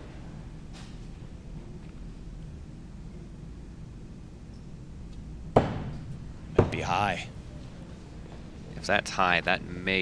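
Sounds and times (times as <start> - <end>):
axes striking wooden targets: 5.5 - 6.8.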